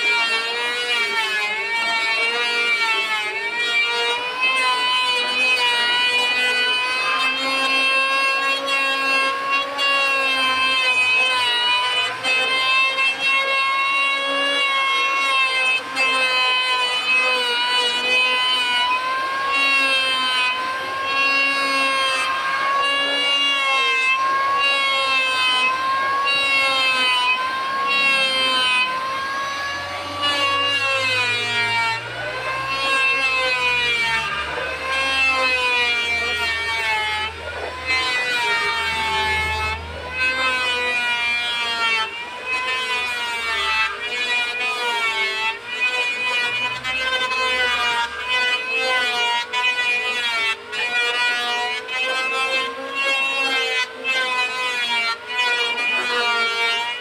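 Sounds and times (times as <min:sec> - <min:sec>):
electric hand planer whining: 0:00.0 - 0:57.0.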